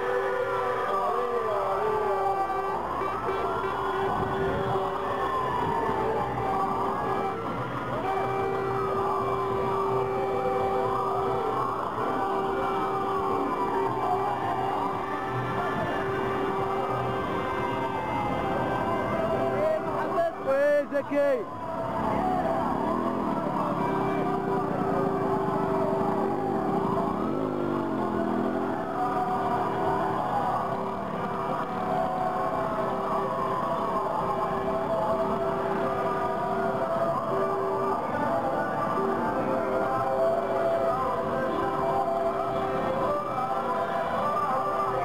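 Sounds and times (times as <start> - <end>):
crowd shouting: 0.0 - 45.0
sirens wailing: 0.0 - 45.0
car horns held notes: 2.4 - 5.8, 6.4 - 20.5.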